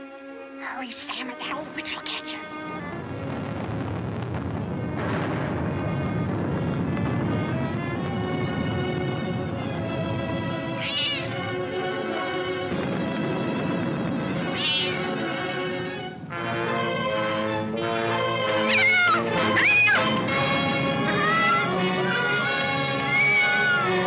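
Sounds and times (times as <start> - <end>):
orchestral film music: 4.7 - 24.0
kitten crying: 10.8 - 11.4, 14.4 - 15.1, 18.6 - 20.1, 21.1 - 22.4, 23.0 - 24.0.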